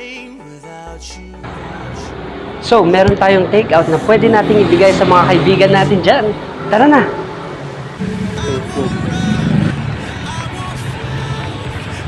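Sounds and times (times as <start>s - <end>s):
indistinct voices: 1.4s - 7.3s, 7.9s - 12.0s
street traffic rumble: 1.4s - 12.0s.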